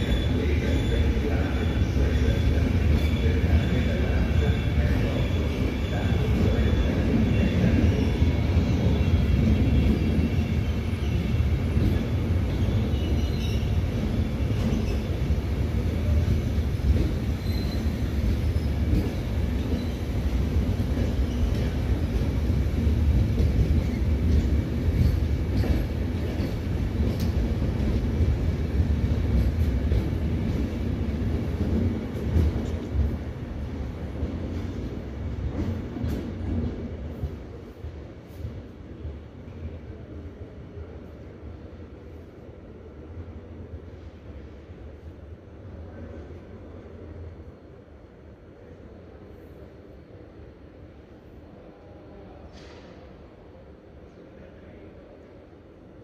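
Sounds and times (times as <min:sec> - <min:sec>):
train wheels rumbling on rail: 0:00.0 - 0:50.4, 0:52.3 - 0:53.4
faint wheel squeal: 0:17.4 - 0:18.8.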